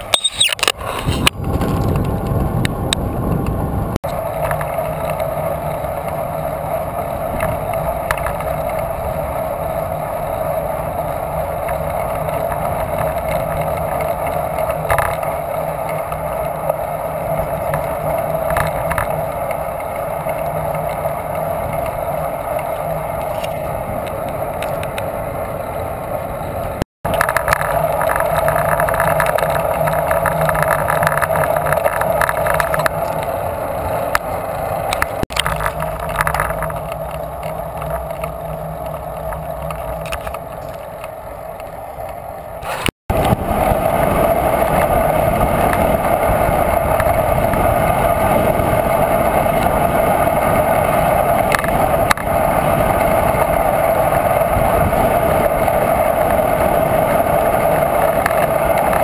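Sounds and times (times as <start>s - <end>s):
bicycle tyre and road noise: 0.0s - 59.0s
wind rush on microphone: 0.0s - 59.0s.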